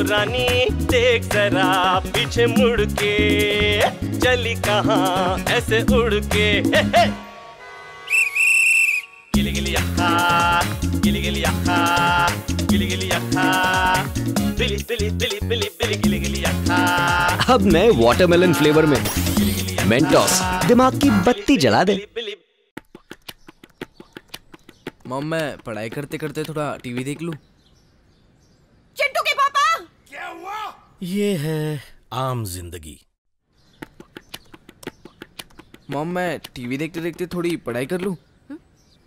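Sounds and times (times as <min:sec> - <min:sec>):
sung music: 0:00.0 - 0:22.0
shrill whistle blast: 0:07.4 - 0:09.4.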